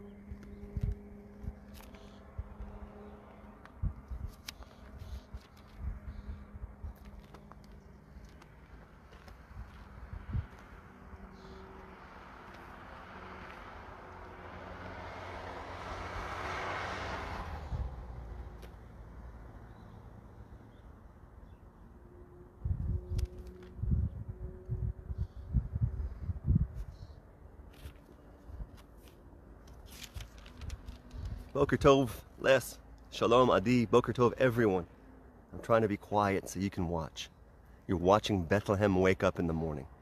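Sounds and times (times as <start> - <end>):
vehicle passing: 0.0 - 20.6.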